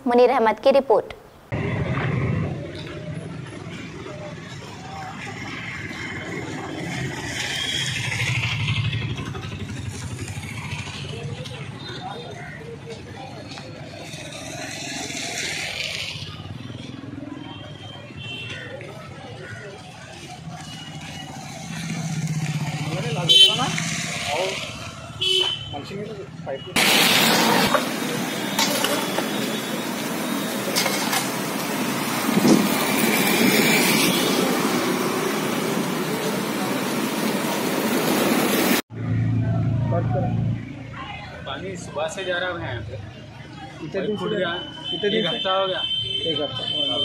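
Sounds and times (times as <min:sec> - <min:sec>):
vehicles passing: 0:01.4 - 0:47.0
motorcycle engine running: 0:07.6 - 0:12.6
horn toots: 0:23.2 - 0:23.8
water rushing onto road: 0:26.8 - 0:38.8
voices in background: 0:39.4 - 0:47.0.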